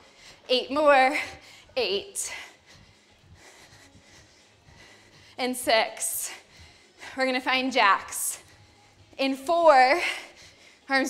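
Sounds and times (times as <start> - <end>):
quiet breathing: 1.2 - 7.4, 8.3 - 9.2, 10.0 - 11.0.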